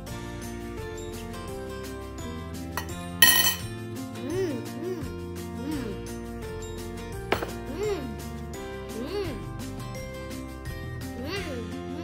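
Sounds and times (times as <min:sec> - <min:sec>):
background music with held notes: 0:00.0 - 0:12.0
metal fork clinking ceramic bowl: 0:02.8 - 0:03.7.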